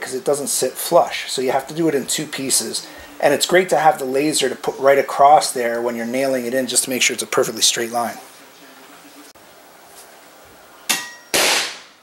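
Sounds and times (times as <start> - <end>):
powder charge firing bang: 11.3 - 12.0.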